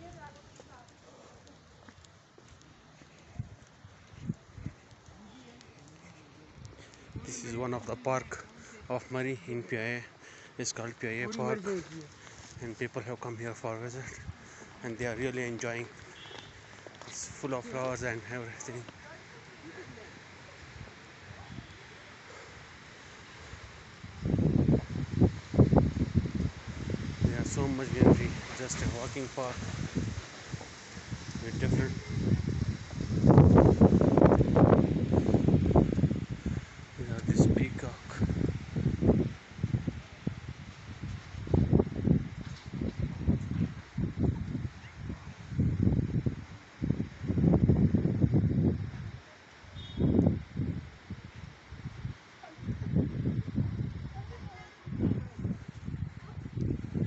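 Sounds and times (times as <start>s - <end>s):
footsteps on stone paving: 0.1s - 7.1s, 15.5s - 18.0s, 32.8s - 36.2s
wind buffeting microphone: 3.2s - 9.7s, 23.3s - 49.2s, 49.8s - 57.0s
faint voices talking: 15.7s - 22.6s.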